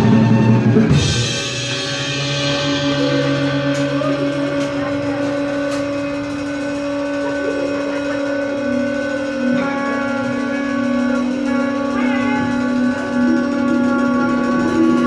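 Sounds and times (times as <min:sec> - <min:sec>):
saxophone holding long notes: 0:00.0 - 0:15.0
trumpet holding long notes: 0:00.0 - 0:15.0.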